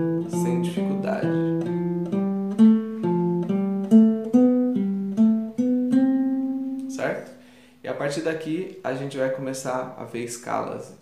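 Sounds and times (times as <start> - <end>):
classical guitar plucked notes: 0.0 - 7.6.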